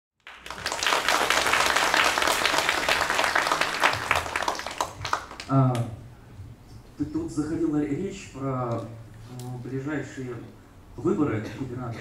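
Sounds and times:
audience applauding: 0:00.2 - 0:05.5.

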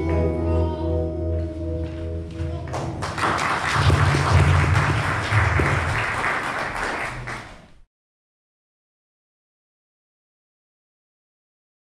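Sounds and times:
group clapping: 0:02.5 - 0:07.9.

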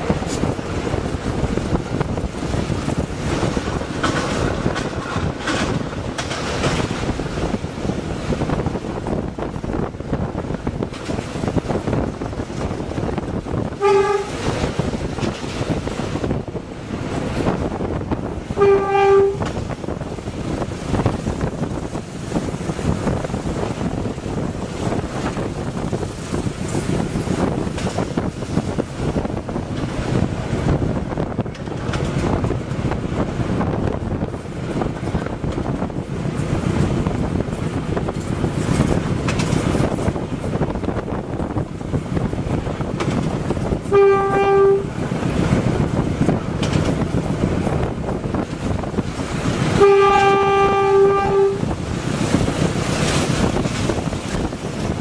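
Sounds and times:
locomotive horn blasts: 0:13.7 - 0:14.5, 0:18.5 - 0:19.5, 0:43.8 - 0:45.0, 0:49.7 - 0:51.8.

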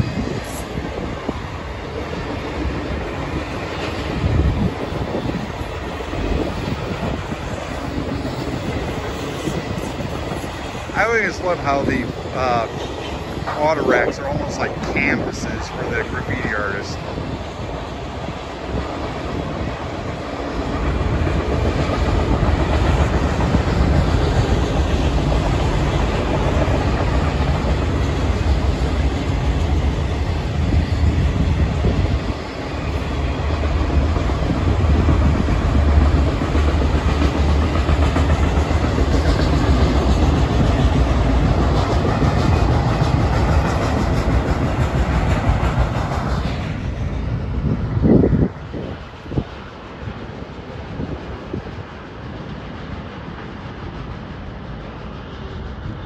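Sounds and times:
freight train wheels rumbling on rail: 0:00.0 - 0:56.0.

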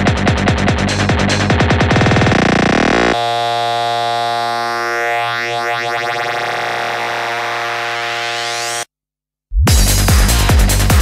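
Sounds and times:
kick-driven trance beat: 0:00.0 - 0:08.8, 0:09.6 - 0:11.0
sustained synthesizer chord: 0:02.0 - 0:08.8
rising synth sweeps: 0:02.2 - 0:08.9.

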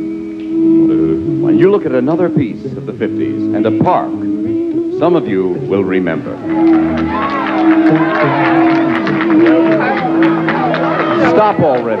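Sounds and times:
male a cappella group singing: 0:00.8 - 0:06.2.

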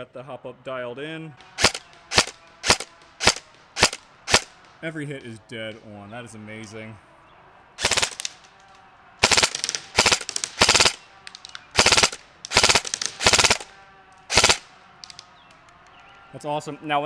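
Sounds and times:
airsoft rifle full-auto bursts: 0:01.4 - 0:04.7, 0:07.8 - 0:08.4, 0:09.2 - 0:15.2.

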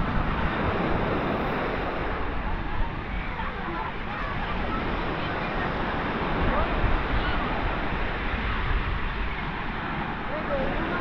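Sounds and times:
waves breaking on beach: 0:00.0 - 0:11.0
wind buffeting microphone: 0:00.0 - 0:11.0.

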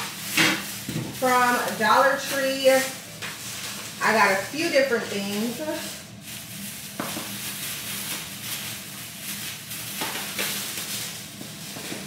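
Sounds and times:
shopping bags rustling: 0:00.0 - 0:12.0.

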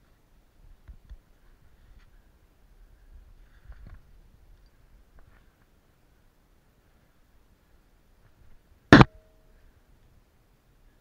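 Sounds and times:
climbing equipment striking rock: 0:08.9 - 0:09.4.

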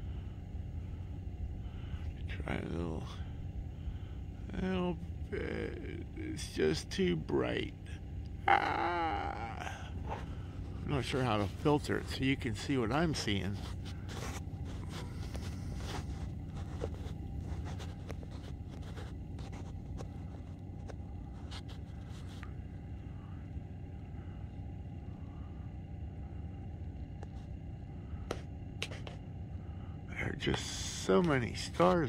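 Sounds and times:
low outdoor rumble: 0:00.0 - 0:32.0.

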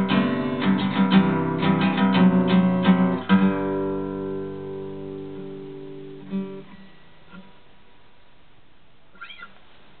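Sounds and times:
acoustic guitar chord ringing: 0:00.0 - 0:08.1.

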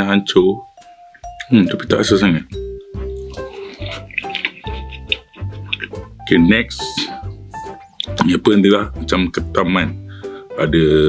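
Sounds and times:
background music: 0:00.0 - 0:11.0
wet chewing: 0:02.7 - 0:06.2.

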